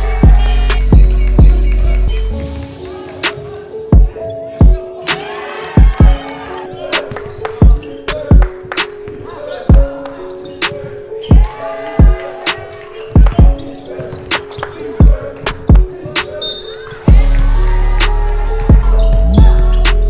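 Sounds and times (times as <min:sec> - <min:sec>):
heavy kick drum: 0:17.1 - 0:17.6.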